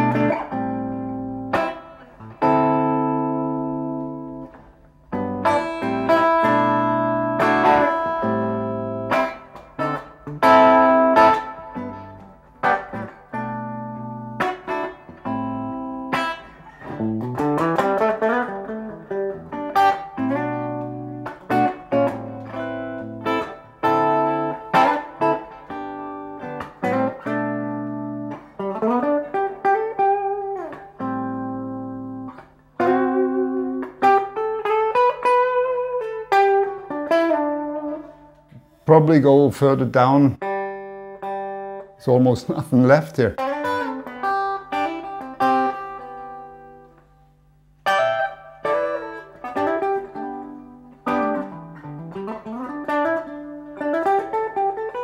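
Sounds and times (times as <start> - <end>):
electric guitar playing: 0.0 - 55.0.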